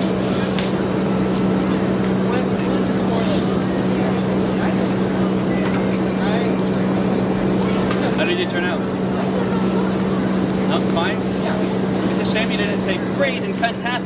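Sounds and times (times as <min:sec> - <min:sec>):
loud mechanical hum: 0:00.0 - 0:14.0
voices talking: 0:00.0 - 0:14.0.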